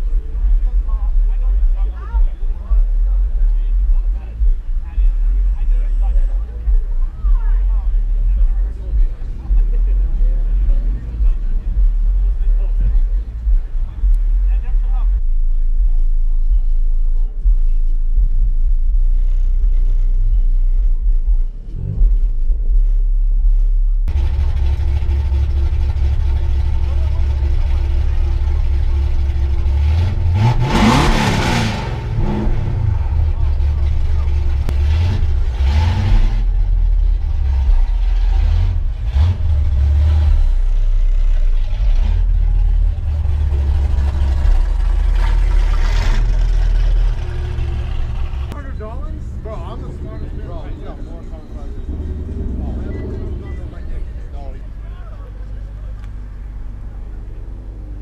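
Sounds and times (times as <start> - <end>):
car engine idling: 0.0 - 58.0
engine revving: 0.0 - 58.0.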